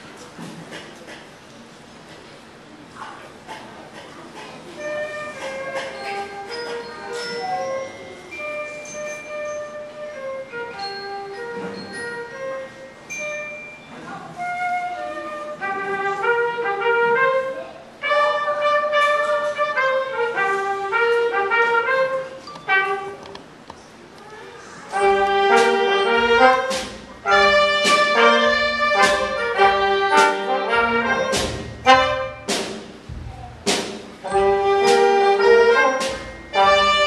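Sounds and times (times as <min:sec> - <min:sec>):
concert band playing jazzy tune: 0:04.4 - 0:23.6, 0:24.8 - 0:37.0
sharp drum hits: 0:25.0 - 0:37.0.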